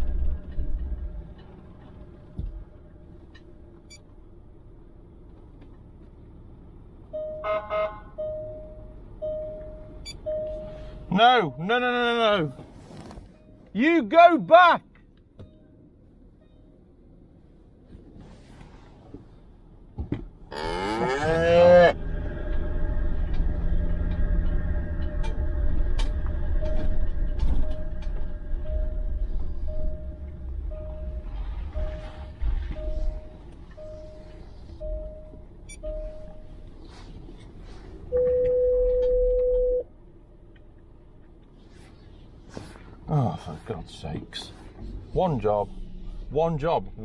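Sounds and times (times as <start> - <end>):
car engine running inside cabin: 19.0 - 47.0
steady single tone: 26.5 - 36.6, 38.1 - 39.9.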